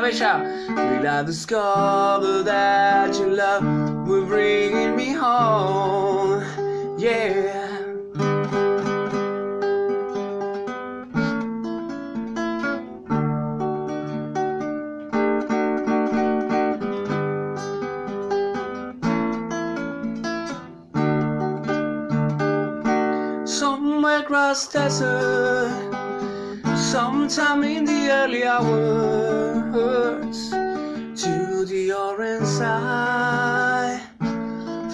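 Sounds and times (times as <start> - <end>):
acoustic guitar strumming: 0.0 - 34.9.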